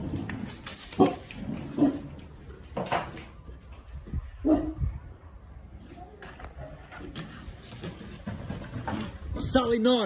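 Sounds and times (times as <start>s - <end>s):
dog barking gruffly: 4.4s - 4.8s.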